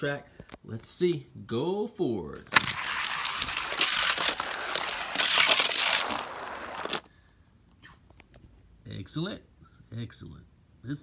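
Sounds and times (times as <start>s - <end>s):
toy car rattling on plastic track: 2.5s - 7.1s.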